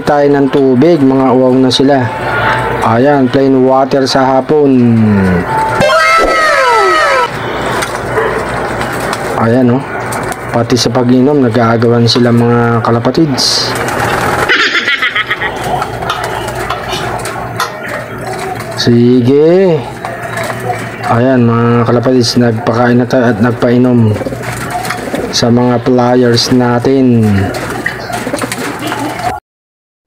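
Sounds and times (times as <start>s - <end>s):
pigeons shuffling: 12.0s - 29.4s
pigeon wings flurry: 13.3s - 19.0s, 23.3s - 29.4s
pigeons pecking clicks: 13.7s - 19.2s, 19.8s - 21.2s, 22.0s - 29.4s.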